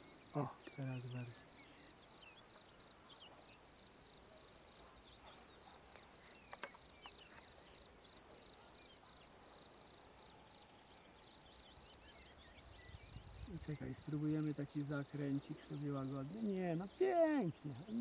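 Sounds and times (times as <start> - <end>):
insects buzzing: 0.0 - 18.0.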